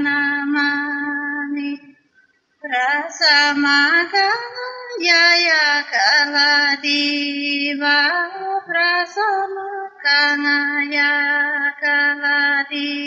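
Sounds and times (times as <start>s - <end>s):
woman singing folk melody: 0.0s - 1.9s, 2.6s - 13.0s.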